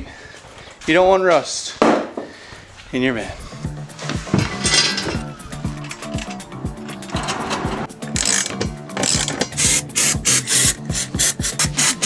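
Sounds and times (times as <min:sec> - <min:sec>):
background music with steady beat: 0:03.0 - 0:12.0
socket ratchet clicking: 0:05.8 - 0:12.0.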